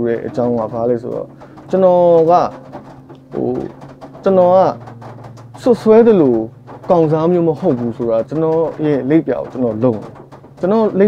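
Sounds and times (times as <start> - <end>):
man speaking: 0.0 - 2.6, 3.3 - 4.8, 5.6 - 11.0
steady low hum: 0.0 - 11.0.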